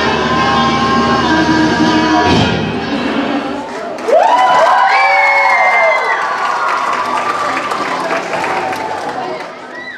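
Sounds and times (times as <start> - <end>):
audience clapping: 3.7 - 9.9
high-pitched audience shouts: 4.0 - 8.2.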